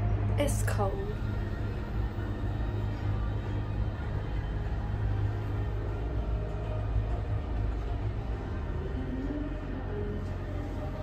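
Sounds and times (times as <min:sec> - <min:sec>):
faint music: 0:00.0 - 0:11.0
steady low rumble: 0:00.0 - 0:11.0.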